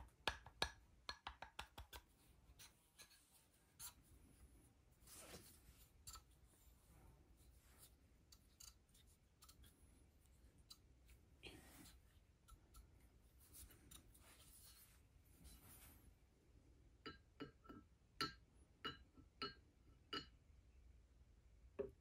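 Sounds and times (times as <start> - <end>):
faint clicks of metal parts: 5.3 - 6.4, 7.7 - 14.9.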